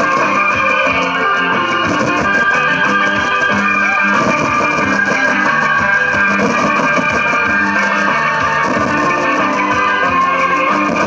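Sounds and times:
instrumental dance music: 0.0s - 11.0s.

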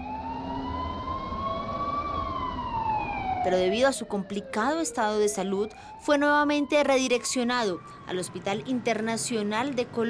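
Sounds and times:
ambulance siren wailing: 0.0s - 10.0s.

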